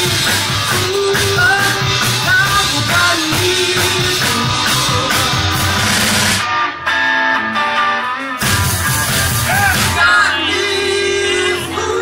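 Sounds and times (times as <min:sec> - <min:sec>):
live band playing soul-pop: 0:00.0 - 0:12.0.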